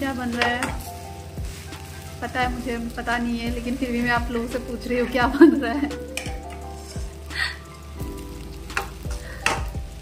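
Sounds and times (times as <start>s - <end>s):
food sizzling in oil: 0.0s - 10.0s
wooden spatula scraping pan: 6.2s - 7.2s.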